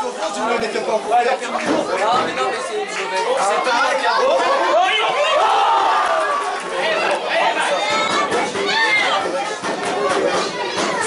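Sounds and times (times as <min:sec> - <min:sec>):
crowd shouting and chattering: 0:00.0 - 0:11.0.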